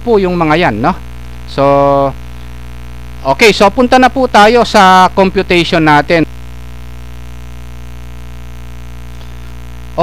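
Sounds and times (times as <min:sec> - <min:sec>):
person speaking: 0:00.0 - 0:02.4, 0:03.2 - 0:06.3
electrical mains hum: 0:00.0 - 0:10.0.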